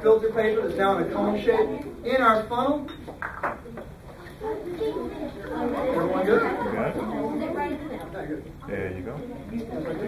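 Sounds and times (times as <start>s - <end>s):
children chattering: 0.6s - 2.7s, 3.6s - 10.0s.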